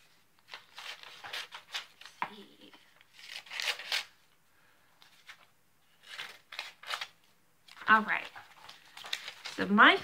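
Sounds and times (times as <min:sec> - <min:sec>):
scissors cutting paper: 0:03.2 - 0:04.1.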